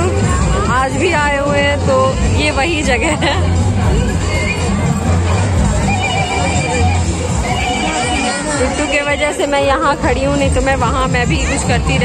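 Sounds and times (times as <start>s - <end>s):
crowd rumble: 0.0s - 12.0s
music: 0.0s - 12.0s.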